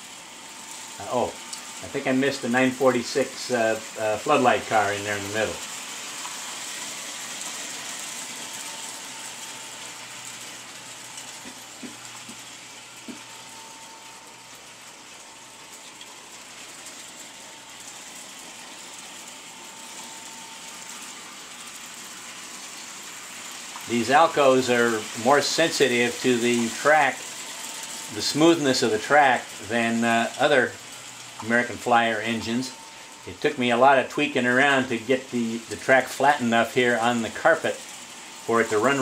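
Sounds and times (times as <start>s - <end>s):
model train motors and wheels whirring: 0.0s - 39.0s.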